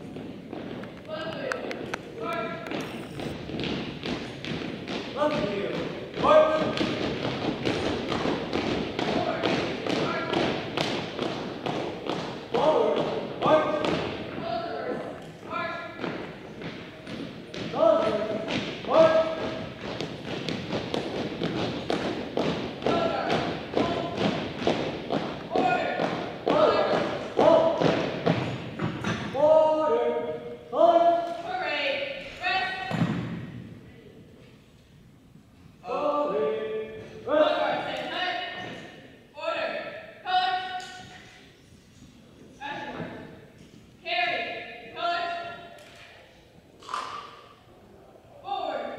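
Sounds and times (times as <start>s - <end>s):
marching footfalls on wooden floor: 0.0s - 29.2s.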